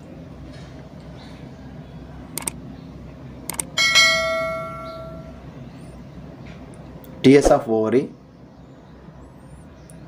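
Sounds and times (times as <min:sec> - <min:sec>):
notification bell chime: 0:03.8 - 0:05.4.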